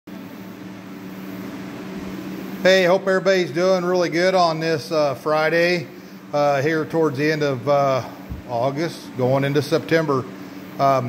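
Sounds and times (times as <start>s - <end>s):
air hissing from fan: 0.1s - 11.0s
box fan humming: 0.1s - 11.0s.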